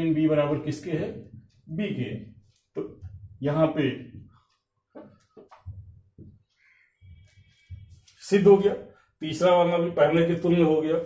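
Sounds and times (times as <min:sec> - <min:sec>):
marker squeaking on whiteboard: 0:04.1 - 0:08.1.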